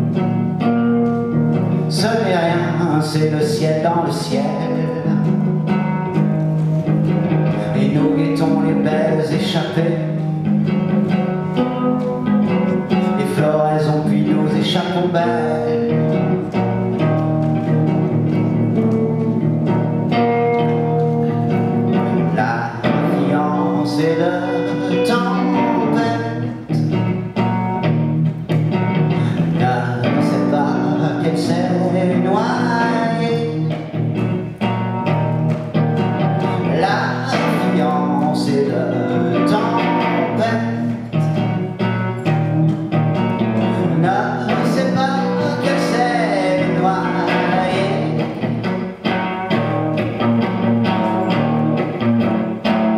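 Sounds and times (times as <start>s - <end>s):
guitar: 0.0s - 52.9s
man singing: 1.7s - 6.4s, 7.3s - 10.5s, 12.2s - 27.1s, 29.1s - 34.2s, 36.3s - 42.8s, 43.5s - 49.0s.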